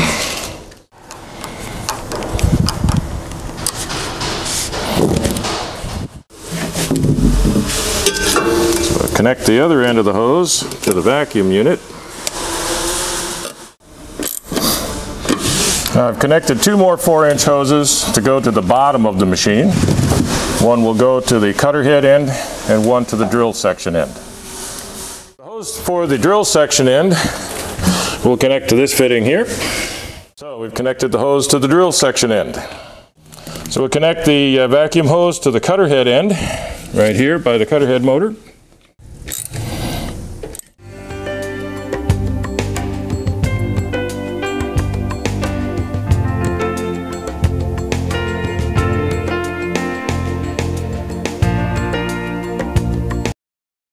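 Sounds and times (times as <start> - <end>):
plastic hose scraping: 3.6 - 8.2
music: 40.8 - 53.4.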